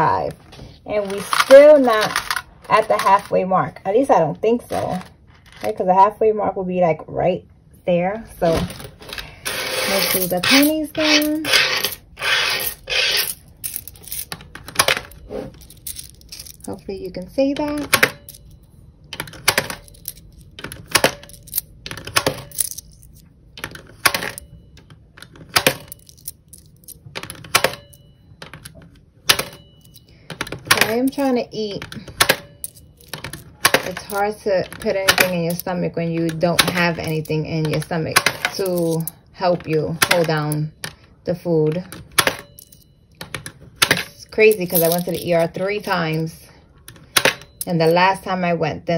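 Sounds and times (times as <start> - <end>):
coin slot mechanism clicking: 0.9 - 3.4, 8.4 - 48.2
coins clinking onto coins: 0.9 - 3.4, 8.4 - 41.0, 41.7 - 48.2.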